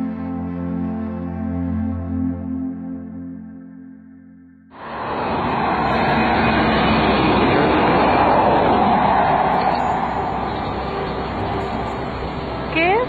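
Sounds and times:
vehicle passing on road: 4.8 - 13.0.

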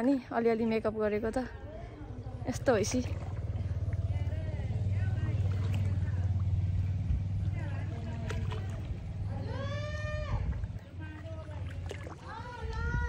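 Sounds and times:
wind buffeting microphone: 2.3 - 13.0.

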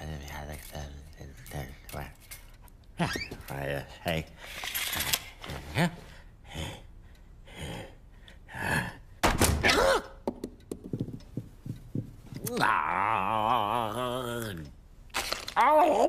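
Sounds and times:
cartoon grunts and mumbles: 7.5 - 9.0, 12.4 - 14.7, 15.6 - 16.0
door shutting thud: 9.2 - 9.7.

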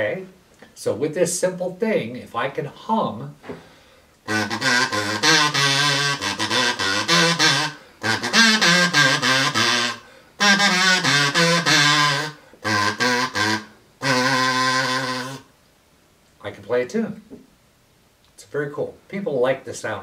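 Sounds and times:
kazoo playing a tune: 3.5 - 15.5.

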